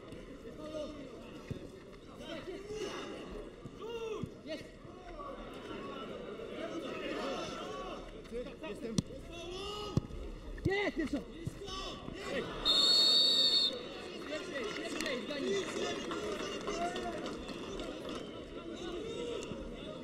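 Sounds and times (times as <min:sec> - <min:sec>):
football crowd noise: 0:00.0 - 0:20.0
spectator chatter: 0:00.0 - 0:20.0
referee's whistle blast: 0:12.6 - 0:13.9.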